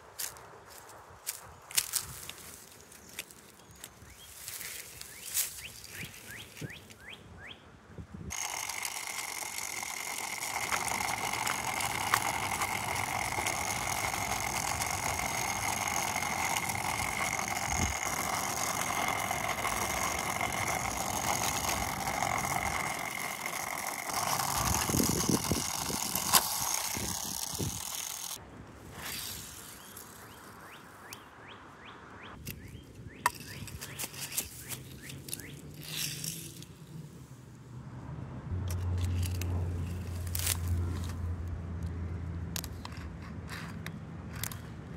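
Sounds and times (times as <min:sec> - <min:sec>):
motorized toy track booster whirring: 0:08.3 - 0:28.4, 0:33.2 - 0:36.8, 0:38.6 - 0:41.2.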